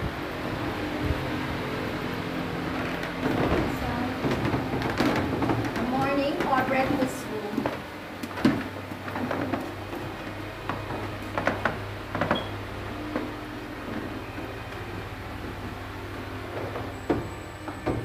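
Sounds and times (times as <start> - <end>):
low hum: 0.0 - 18.0
footsteps on wooden floors: 0.8 - 18.0
knocks: 16.4 - 18.0.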